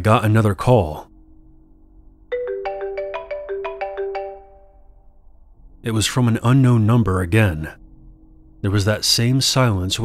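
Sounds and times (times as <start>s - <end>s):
phone ringtone melody: 2.3s - 5.0s.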